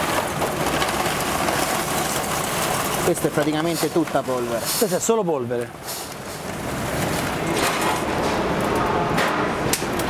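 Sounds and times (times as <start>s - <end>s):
charcoal pouring onto grill: 0.0s - 8.8s.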